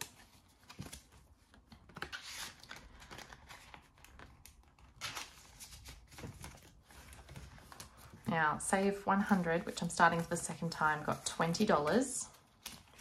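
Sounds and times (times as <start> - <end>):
plastic sleeves and banknotes rustling: 0.0 - 13.0.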